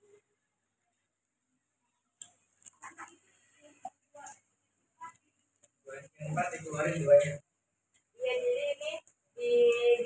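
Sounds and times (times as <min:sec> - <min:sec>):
faint sharp clicks and taps: 0:02.0 - 0:05.8.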